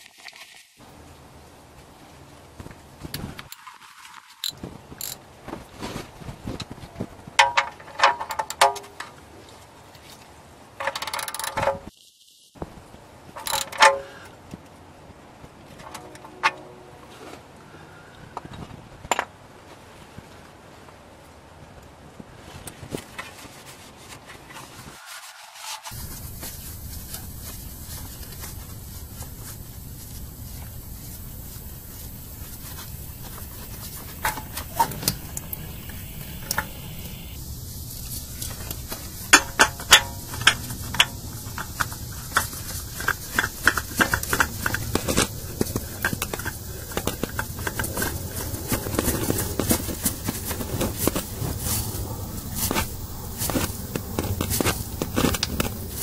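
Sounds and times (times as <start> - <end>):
hand working oil filter: 13.4 - 14.2, 25.8 - 56.0
steady hiss: 24.5 - 56.0.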